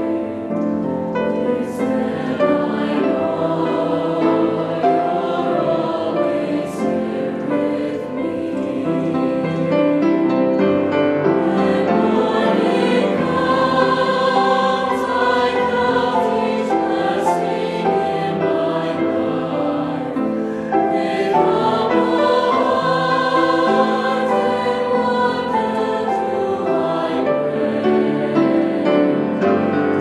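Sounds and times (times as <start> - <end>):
mixed choir singing in harmony: 0.0 - 30.0
piano: 0.0 - 30.0.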